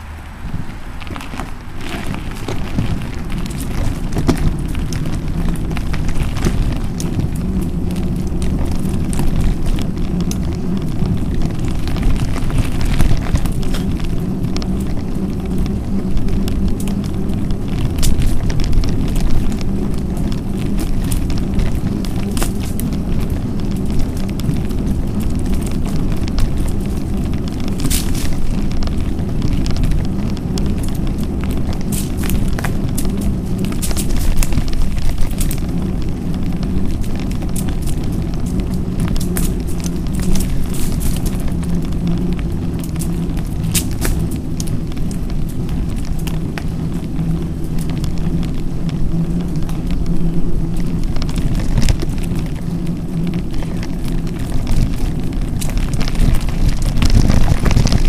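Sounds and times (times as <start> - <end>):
bike clicks and rattles: 0.0 - 58.0
bike tyres rumbling on gravel: 0.0 - 58.0.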